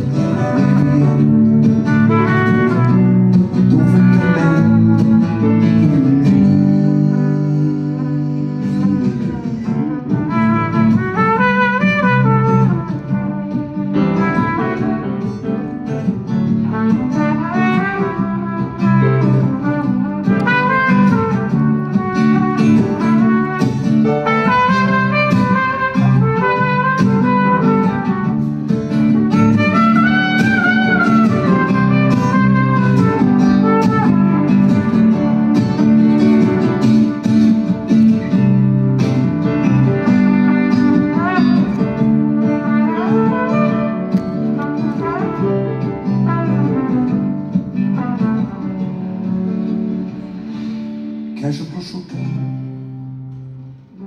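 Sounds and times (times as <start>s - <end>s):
trumpet melody: 0.0s - 50.2s
acoustic guitar chords: 0.0s - 54.0s.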